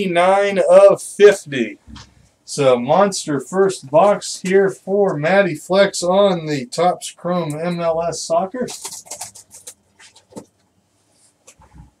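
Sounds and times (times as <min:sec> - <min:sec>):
trading cards rustling and clicking: 0:08.6 - 0:10.6.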